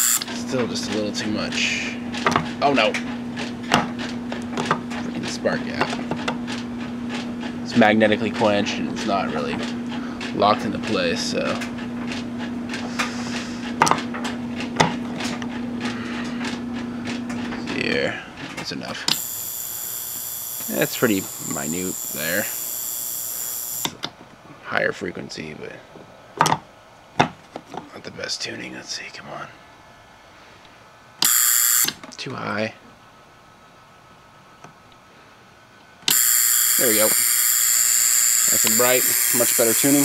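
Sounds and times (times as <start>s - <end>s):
spark gap hissing buzz: 0.0s - 0.2s, 19.1s - 23.9s, 31.2s - 32.0s, 36.1s - 40.0s
electrical hum: 0.0s - 26.1s, 27.8s - 40.0s
sharp electric clicks and snaps: 19.1s - 24.0s, 36.1s - 40.0s.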